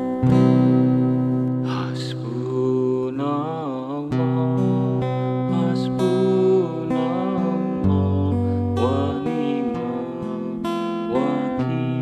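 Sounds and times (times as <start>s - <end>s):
acoustic guitar chords strummed: 0.0s - 12.0s
man singing with vibrato: 1.6s - 12.0s.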